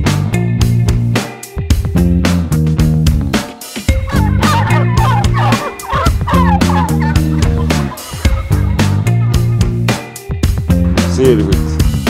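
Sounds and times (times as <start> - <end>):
guitar music with steady beat: 0.0 - 12.0
turkeys gobbling: 3.9 - 9.6.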